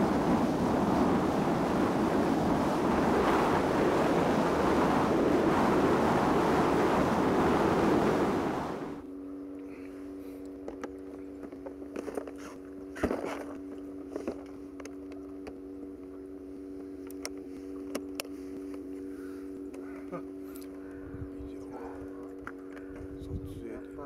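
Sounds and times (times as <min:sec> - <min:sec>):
boat motor humming: 0:00.0 - 0:23.2.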